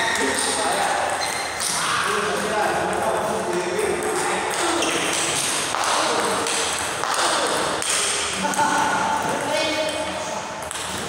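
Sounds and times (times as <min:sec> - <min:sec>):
table tennis ball bouncing: 0:00.0 - 0:11.0.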